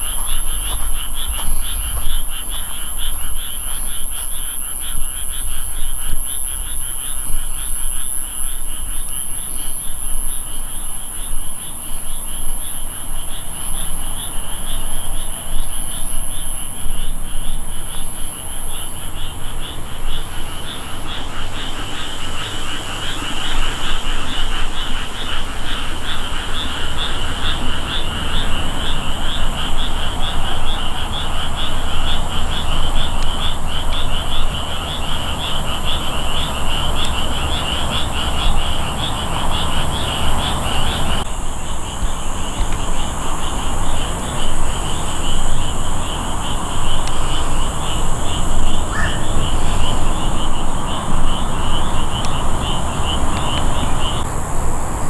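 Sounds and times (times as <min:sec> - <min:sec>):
high-pitched animal calls: 0:48.9 - 0:49.5.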